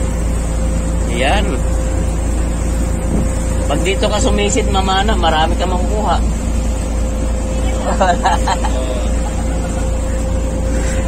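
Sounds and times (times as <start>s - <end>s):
motor boat engine running: 0.0s - 11.0s.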